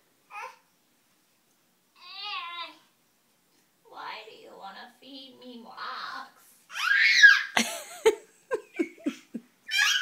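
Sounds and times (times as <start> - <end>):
baby squealing: 6.7 - 7.6, 9.7 - 10.0.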